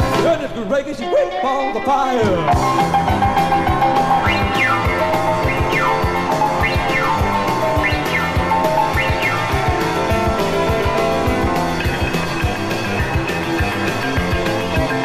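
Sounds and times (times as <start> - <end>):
rock and roll piano: 0.0 - 15.0
steady drum beat: 2.4 - 15.0.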